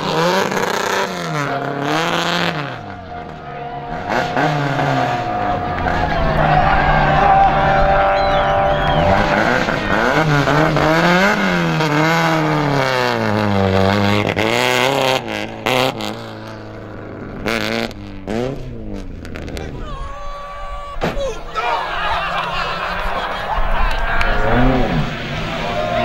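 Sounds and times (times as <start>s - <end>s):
rally car engine revving: 0.0s - 20.1s, 21.0s - 26.0s.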